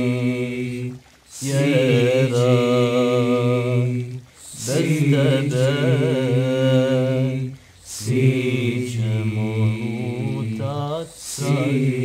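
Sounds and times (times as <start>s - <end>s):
male choir singing in harmony: 0.0s - 12.0s.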